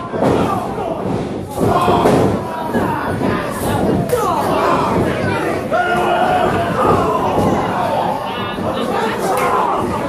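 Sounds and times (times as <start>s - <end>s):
crowd shouting and yelling: 0.0s - 10.0s.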